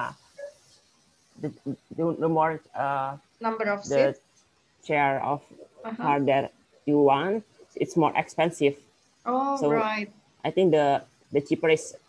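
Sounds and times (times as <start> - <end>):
person speaking hesitantly: 3.8 - 4.1, 5.9 - 6.5, 9.6 - 10.0.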